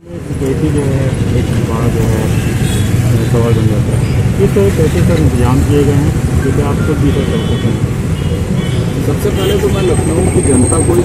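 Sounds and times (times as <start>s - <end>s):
people talking: 0.0s - 2.4s, 3.1s - 7.9s, 9.1s - 11.0s
street traffic rumble: 0.0s - 11.0s.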